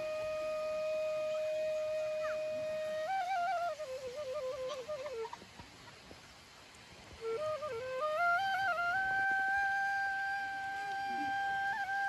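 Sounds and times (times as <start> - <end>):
solo flute melody: 0.0 - 5.7, 7.0 - 12.0.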